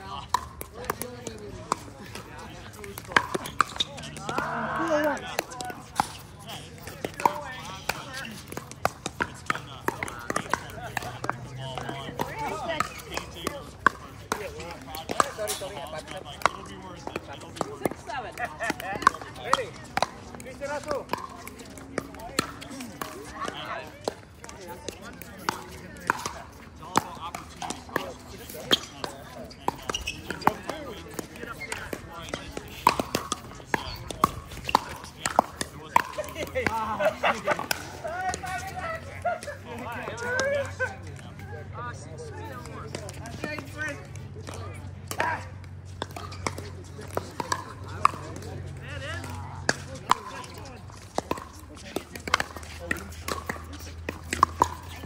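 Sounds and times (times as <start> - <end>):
paddles hitting plastic ball: 0.0 - 41.2, 42.4 - 55.0
people talking: 0.0 - 45.5, 46.1 - 55.0.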